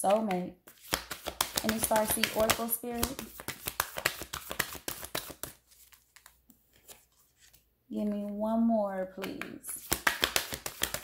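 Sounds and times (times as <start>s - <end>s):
cards being shuffled: 0.0s - 7.7s, 9.2s - 11.0s.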